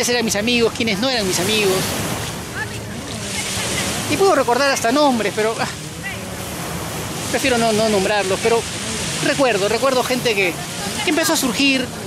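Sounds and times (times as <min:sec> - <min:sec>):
surf washing onto beach: 0:00.0 - 0:12.0.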